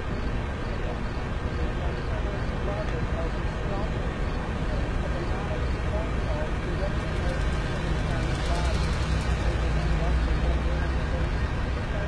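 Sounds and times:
faint indistinct voices: 0.0 - 12.0
vehicle rumble: 0.0 - 12.0.

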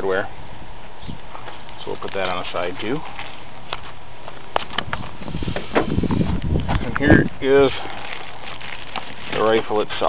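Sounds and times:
knocking and rustling: 3.7 - 6.9.

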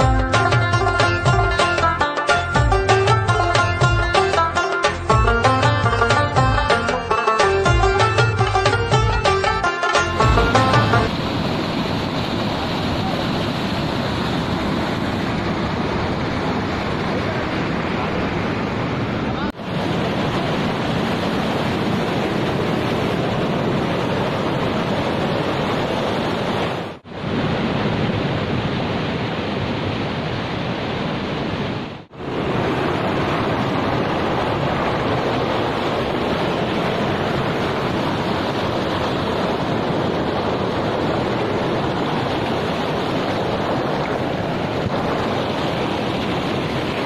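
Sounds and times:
rushing mountain stream: 0.0 - 47.0.

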